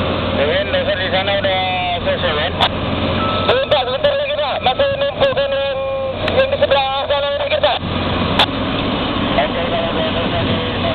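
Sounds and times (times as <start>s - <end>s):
excavator engine running: 0.0s - 10.9s
person's voice: 3.5s - 7.8s.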